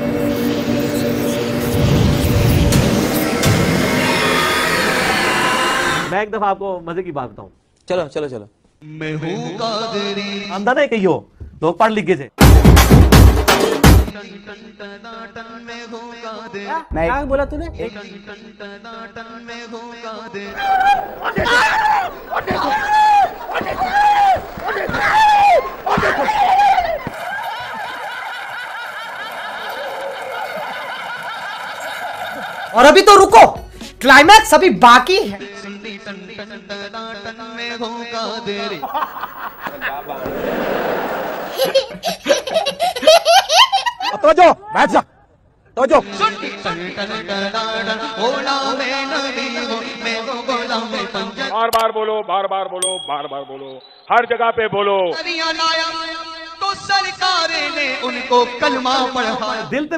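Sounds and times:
dramatic intro music: 0.0 - 6.1
people laughing: 20.5 - 33.0, 38.6 - 44.3.

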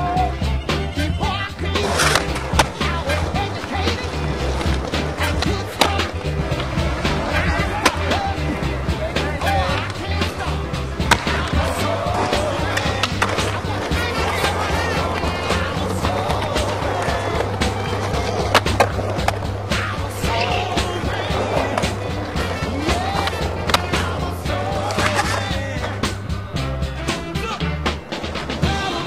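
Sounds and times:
music with steady bass beat: 0.0 - 29.0
skateboard clacks: 0.0 - 29.0
skateboard wheels rolling on stone: 0.0 - 29.0.

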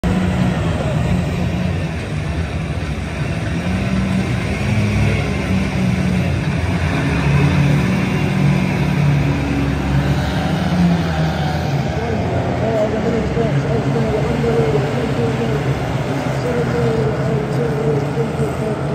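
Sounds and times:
racing car engines droning: 0.0 - 18.9.

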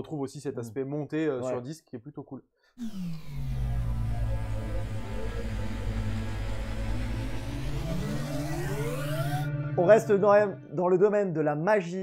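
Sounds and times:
deep steady drone: 2.8 - 10.8
tone sweeping upward: 2.8 - 11.3.

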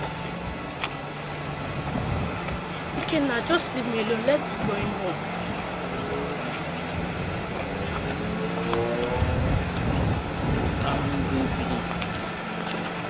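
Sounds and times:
steady low hum: 0.0 - 13.0
vehicle passing: 0.0 - 13.0.

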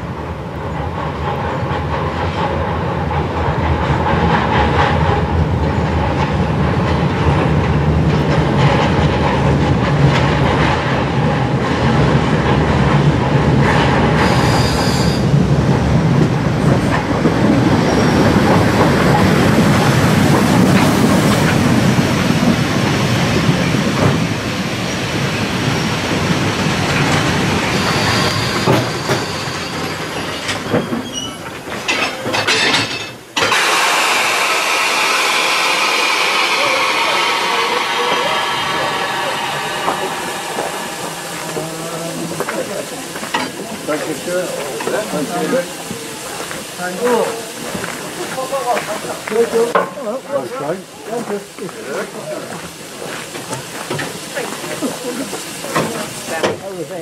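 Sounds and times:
train wheels clattering on rails: 0.0 - 50.0, 51.2 - 57.0
steam locomotive hissing: 0.5 - 31.6, 33.4 - 57.0
high wheel squeals: 14.2 - 15.4, 27.6 - 31.5.

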